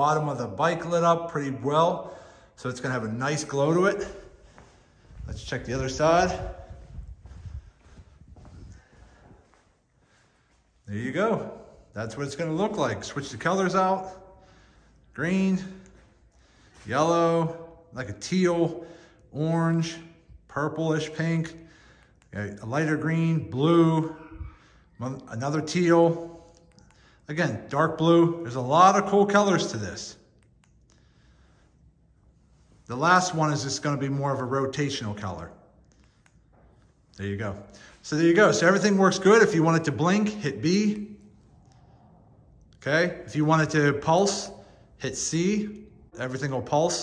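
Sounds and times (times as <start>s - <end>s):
footsteps on concrete: 4.0s - 10.6s.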